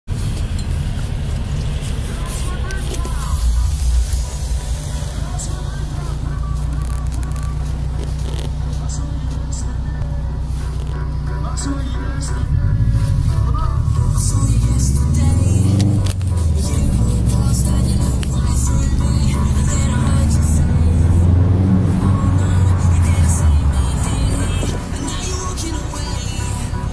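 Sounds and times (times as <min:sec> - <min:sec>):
road noise: 0:00.0 - 0:26.9
car engine running: 0:00.1 - 0:26.9
music with vocals on car stereo: 0:00.1 - 0:26.9.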